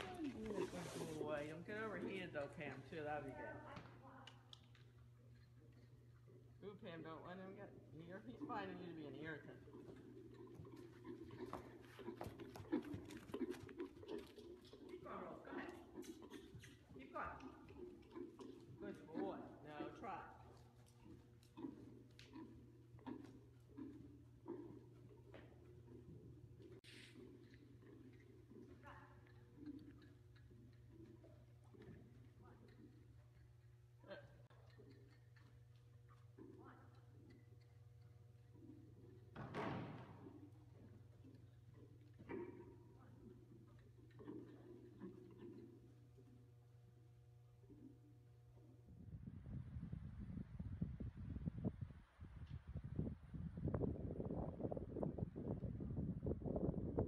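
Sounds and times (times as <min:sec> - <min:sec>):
hoofbeats on soft dirt: 0:00.0 - 0:04.3, 0:08.4 - 0:33.6
steady low hum: 0:00.0 - 0:57.0.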